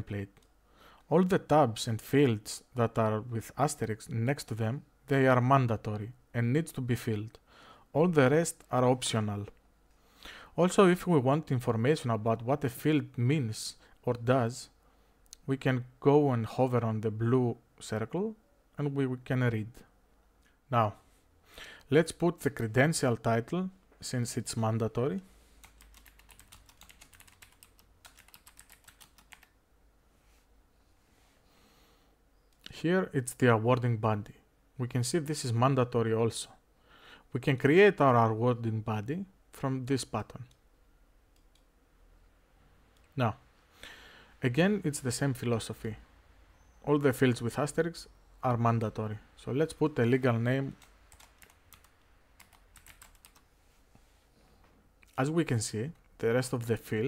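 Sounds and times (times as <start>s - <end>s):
typing on computer keyboard: 25.6s - 29.5s, 50.8s - 53.4s.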